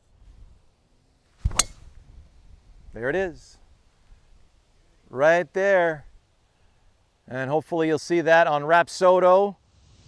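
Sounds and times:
golf club striking ball: 1.4 - 2.0.

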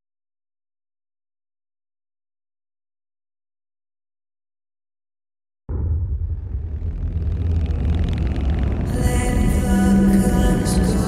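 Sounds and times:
fast car rumbling: 6.3 - 11.0.

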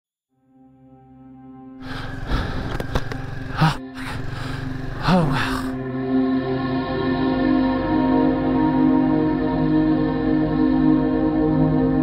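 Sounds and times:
background music: 0.3 - 12.0
motorcycle engine running: 1.8 - 5.8
brief vocal sound: 3.5 - 5.9.

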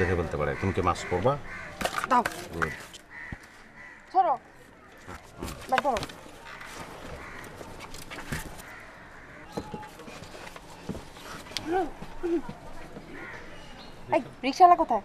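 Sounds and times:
crow cawing: 0.0 - 5.5, 6.4 - 9.9, 13.1 - 13.7.

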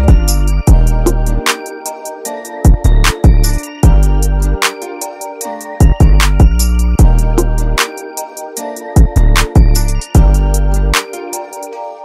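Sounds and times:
deep bass notes: 0.0 - 1.4
melodic chords: 0.0 - 12.0.

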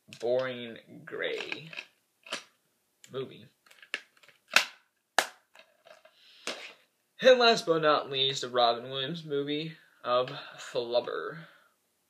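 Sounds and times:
plastic case snapping shut: 3.9 - 5.4.

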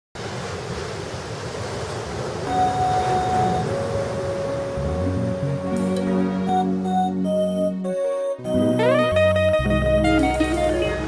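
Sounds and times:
ocean surf: 0.2 - 7.3
sustained keyboard tones: 2.5 - 11.0.

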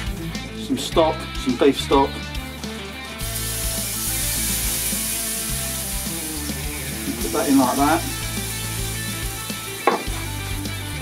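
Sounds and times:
liquid sizzling on hot metal: 2.5 - 11.0.

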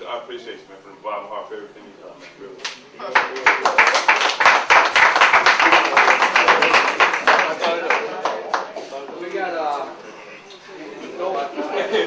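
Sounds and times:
audience applauding: 3.1 - 8.8.

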